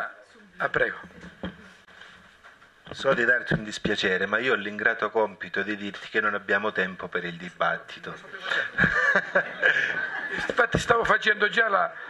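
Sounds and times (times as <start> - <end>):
men chuckling: 8.4 - 10.8.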